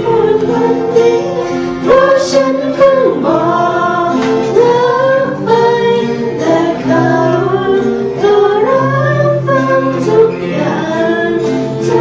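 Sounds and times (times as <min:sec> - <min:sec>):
strummed acoustic guitars: 0:00.0 - 0:12.0
voices singing in unison: 0:00.0 - 0:12.0.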